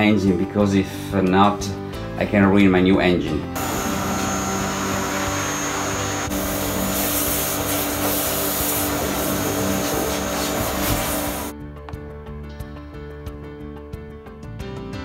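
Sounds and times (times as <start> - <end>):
pressure washer spraying water: 3.6 - 11.5.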